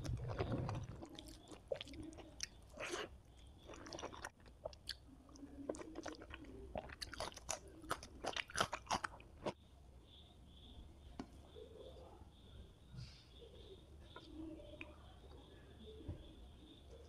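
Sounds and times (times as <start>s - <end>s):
person chewing crunchy food: 0.0s - 9.6s.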